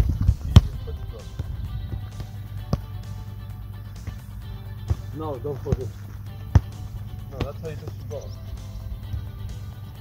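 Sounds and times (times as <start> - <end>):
wind rumble on microphone: 0.0 - 2.3
football kick thud: 0.0 - 2.9, 4.0 - 6.8
background music: 0.0 - 10.0.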